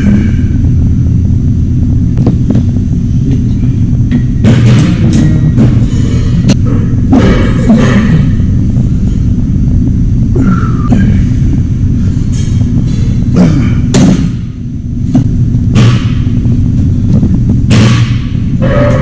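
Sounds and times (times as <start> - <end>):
loud low rumble: 0.0 - 19.0.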